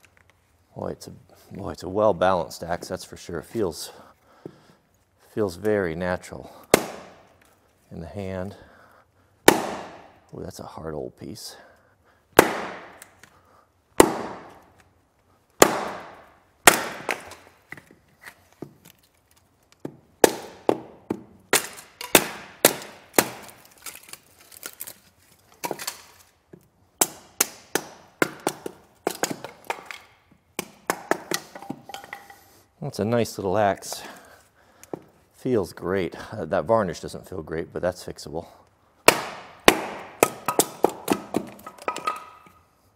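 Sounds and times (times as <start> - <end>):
axe chopping wood: 6.6 - 7.3, 9.4 - 10.1, 12.4 - 13.1, 14.0 - 14.7, 15.6 - 17.4, 19.8 - 23.6, 27.0 - 32.1, 39.1 - 42.4.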